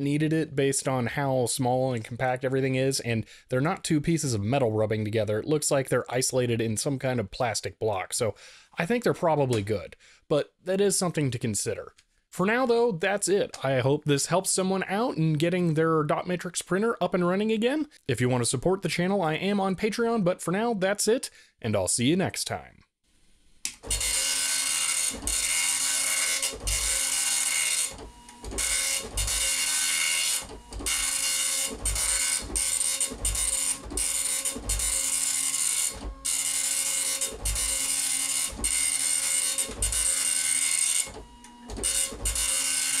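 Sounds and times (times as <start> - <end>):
dot matrix printer rasping: 23.8 - 43.0.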